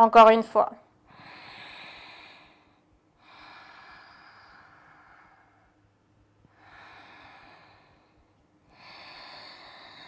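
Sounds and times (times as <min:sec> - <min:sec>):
woman breathing slowly: 0:00.9 - 0:10.0.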